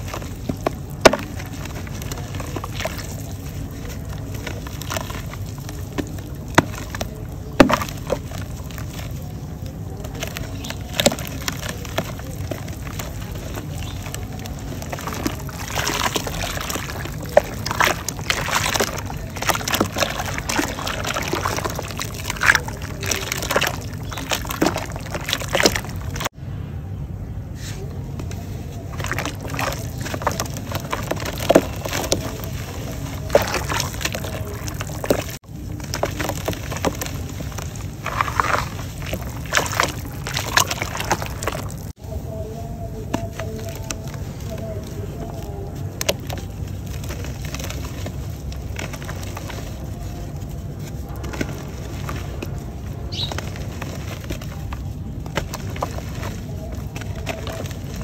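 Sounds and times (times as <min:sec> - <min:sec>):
dried mud cracking and crunching: 0:00.0 - 0:26.4, 0:27.6 - 0:58.0
water sloshing and splashing: 0:00.0 - 0:26.4, 0:28.2 - 0:58.0.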